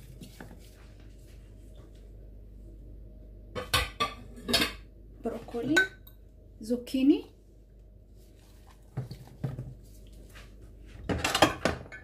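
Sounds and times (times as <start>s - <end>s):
dishes clattering: 11.1s - 12.0s.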